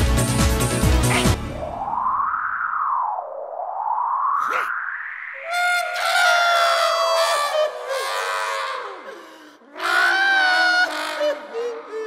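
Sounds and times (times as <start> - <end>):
cartoon voices wailing: 5.4 - 9.1, 9.7 - 12.0.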